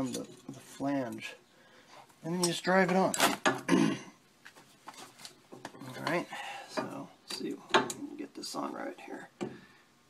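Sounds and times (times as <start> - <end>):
metal tool clinking and scraping: 0.0 - 1.3.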